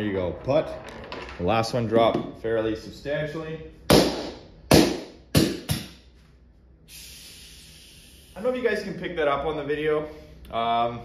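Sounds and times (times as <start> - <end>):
gas venting hiss: 6.9 - 8.7.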